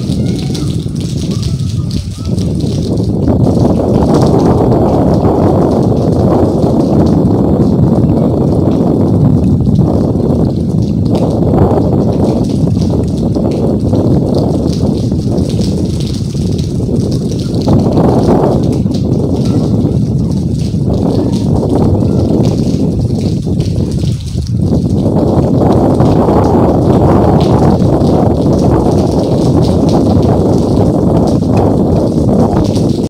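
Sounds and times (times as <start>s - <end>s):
rain falling: 0.0s - 33.0s
wind buffeting microphone: 0.0s - 33.0s.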